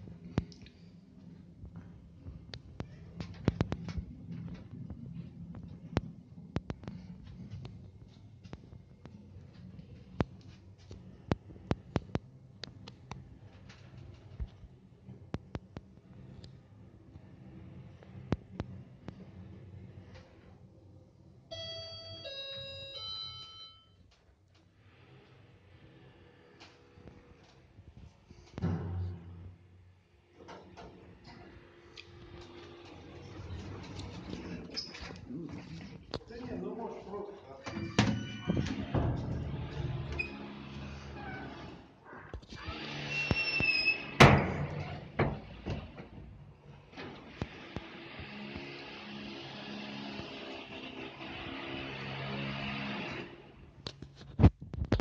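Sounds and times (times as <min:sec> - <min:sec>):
elevator electronic chime: 0:21.5 - 0:24.1
door squeaking: 0:37.6 - 0:46.0
door banging: 0:37.7 - 0:40.2, 0:44.0 - 0:46.3.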